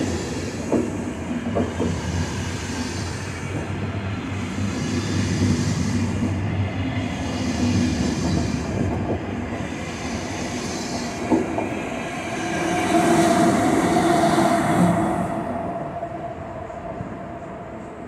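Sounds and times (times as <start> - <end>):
electric locomotive whine: 0.0 - 18.0
train coaches rolling past: 0.0 - 18.0.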